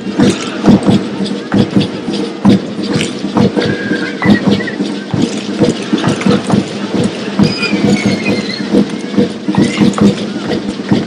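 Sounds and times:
rhythmic wooden knocking: 0.0s - 11.0s.

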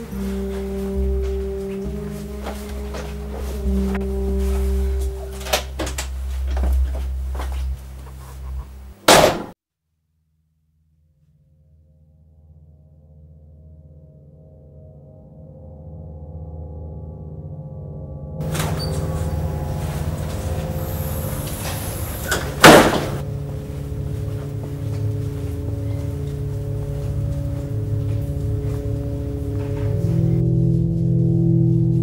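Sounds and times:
low hum: 0.0s - 9.2s, 12.0s - 32.0s
steady low drone: 0.0s - 9.2s, 12.0s - 32.0s
door slamming shut: 9.0s - 9.6s, 18.4s - 23.2s.

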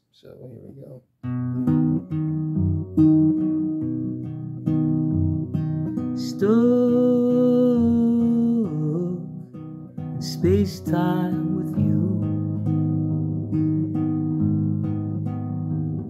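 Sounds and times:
classical guitar fingerpicked: 1.2s - 16.0s.

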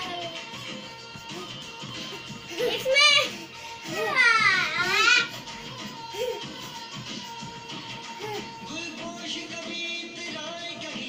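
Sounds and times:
child squealing: 2.6s - 5.3s.

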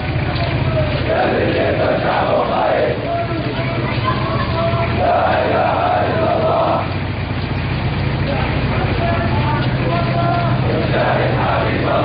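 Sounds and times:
steady low hum: 0.0s - 12.0s
crowd of men chanting: 0.9s - 7.0s, 9.3s - 12.0s.

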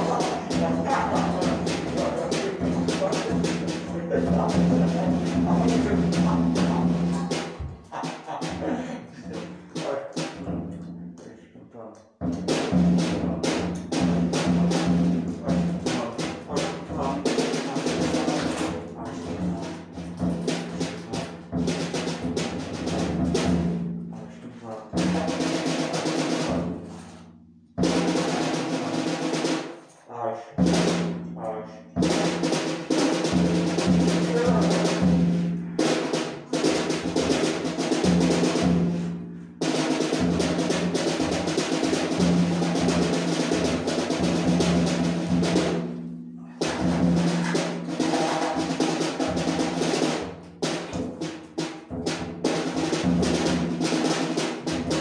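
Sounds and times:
rapid percussive strikes: 0.0s - 11.2s, 12.2s - 24.2s, 24.9s - 30.0s, 30.6s - 55.0s.

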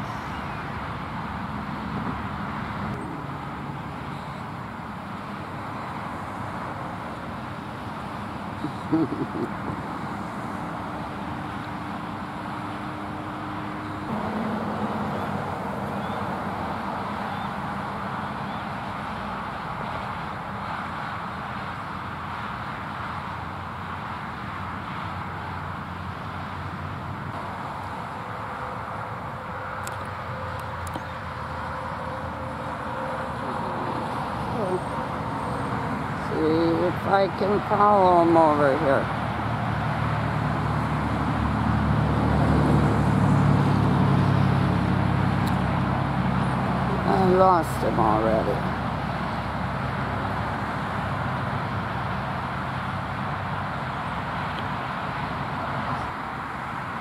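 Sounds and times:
road traffic passing: 0.0s - 57.0s.

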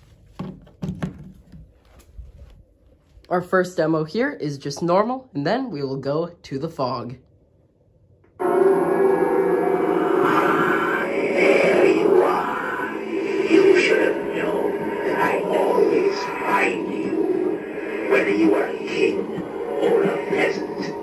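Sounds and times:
eerie music and sound effects: 8.2s - 21.0s
voice-like moaning: 8.4s - 21.0s.

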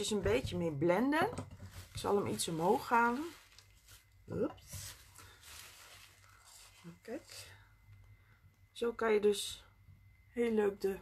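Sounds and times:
sheet rustling softly: 1.6s - 7.6s.

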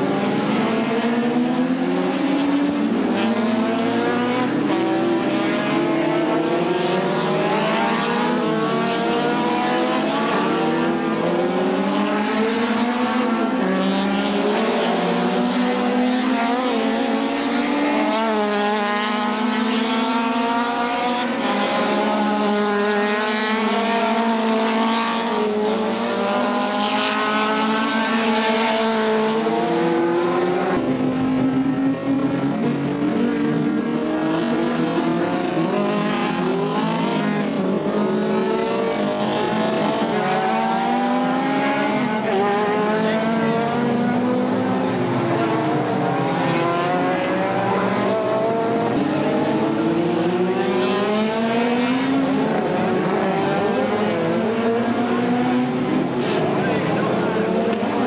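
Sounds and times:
racing car engines at full throttle: 0.0s - 58.0s.

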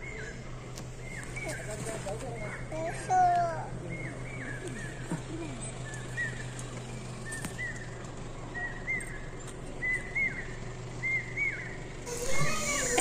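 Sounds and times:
bird calling: 3.9s - 13.0s.

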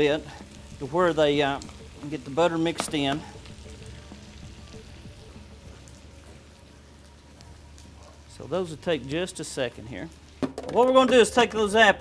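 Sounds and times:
apples sizzling in a frying pan: 0.0s - 12.0s.

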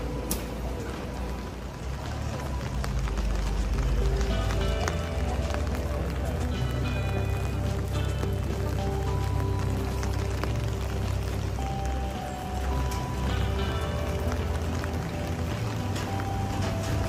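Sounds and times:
music with held notes: 0.0s - 17.0s
street noise: 0.0s - 17.0s.

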